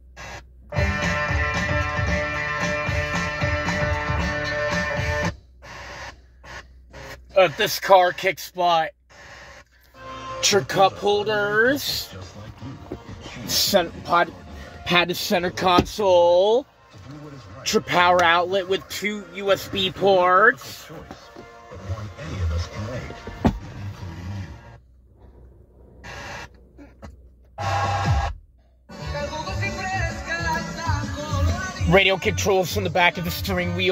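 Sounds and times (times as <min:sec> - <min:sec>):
car radio guitar music: 0:00.0 - 0:33.9
radio static between stations: 0:04.6 - 0:24.8, 0:26.0 - 0:26.9.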